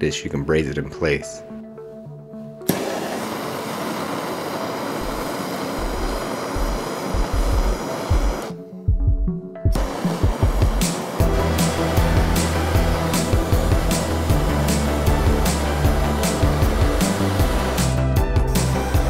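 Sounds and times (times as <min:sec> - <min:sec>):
background music with low beat: 0:00.0 - 0:19.0
gas torch hissing: 0:02.6 - 0:08.6, 0:09.7 - 0:19.0.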